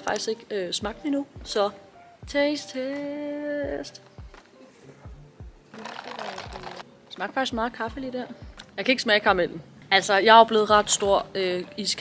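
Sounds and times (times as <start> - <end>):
background music with a beat: 0.0 - 6.8, 7.5 - 8.8, 10.7 - 11.4
slurping through a straw: 5.8 - 6.8.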